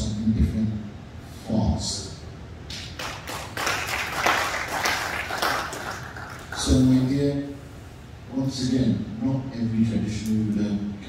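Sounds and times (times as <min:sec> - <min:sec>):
audience applauding: 0:03.0 - 0:07.0.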